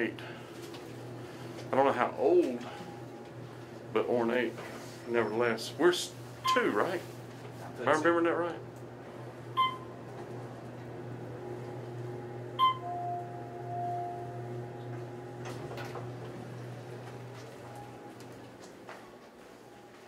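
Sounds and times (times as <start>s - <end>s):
elevator humming: 0.0s - 20.0s
elevator chimes: 9.6s - 10.0s, 12.1s - 15.4s.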